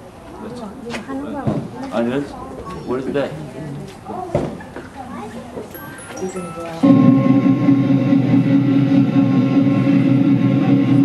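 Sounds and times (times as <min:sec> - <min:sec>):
metal percussion ringing: 0:05.8 - 0:11.0
rapid drum roll: 0:06.8 - 0:11.0.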